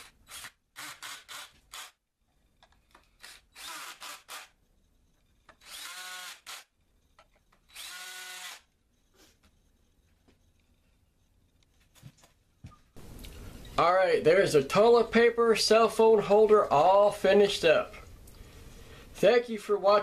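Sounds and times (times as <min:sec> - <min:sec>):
cordless drill driving screws: 0:00.0 - 0:02.0, 0:03.2 - 0:04.5, 0:05.5 - 0:06.7, 0:07.7 - 0:08.7.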